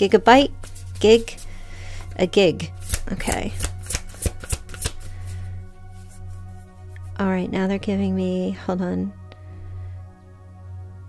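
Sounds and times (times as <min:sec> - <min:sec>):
soft background music: 0:00.0 - 0:11.0
cards being shuffled: 0:00.5 - 0:02.1, 0:02.7 - 0:05.4.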